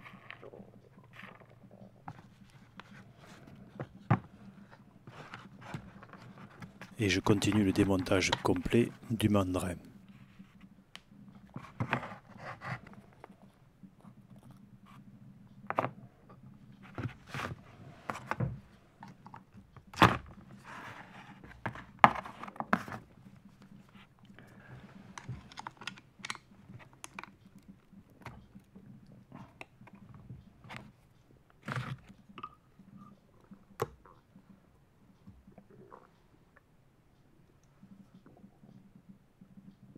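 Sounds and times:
plastic and metal parts handled: 25.0s - 28.4s.

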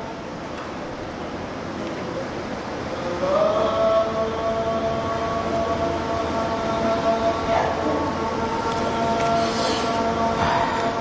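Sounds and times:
rushing background noise: 0.0s - 11.0s.

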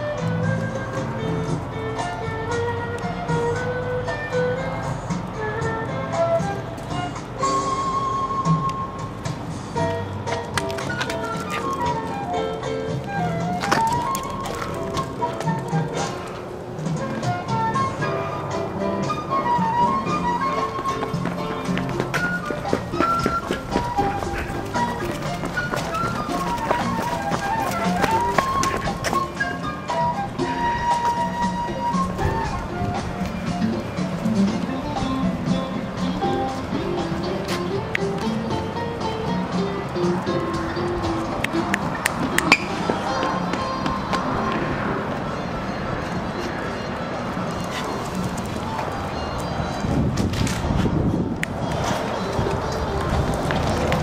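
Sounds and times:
background music melody: 0.0s - 54.0s.

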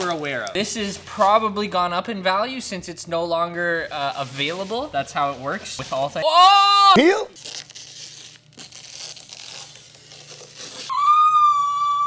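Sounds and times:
plastic film peeling rustle: 0.0s - 1.4s, 7.0s - 10.9s.

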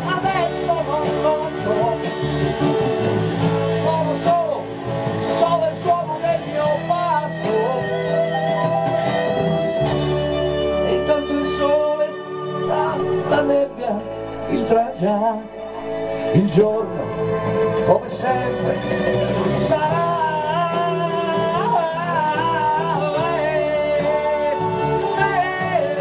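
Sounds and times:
acoustic guitar: 0.0s - 26.0s
live band playing: 0.0s - 26.0s
steady bass: 0.0s - 26.0s
wavering melodic lead line: 0.0s - 26.0s.

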